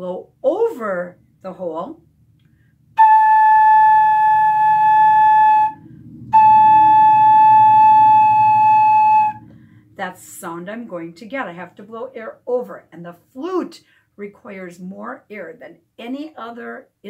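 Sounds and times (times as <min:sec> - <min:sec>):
flute headjoint long high notes: 0:03.0 - 0:09.7.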